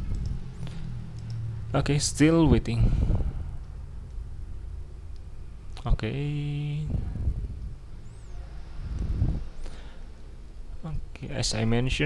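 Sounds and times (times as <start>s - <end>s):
low microphone rumble: 0.0s - 10.8s.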